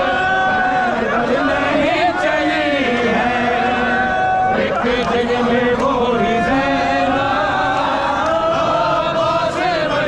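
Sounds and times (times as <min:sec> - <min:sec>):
crowd of men chanting: 0:00.0 - 0:10.0.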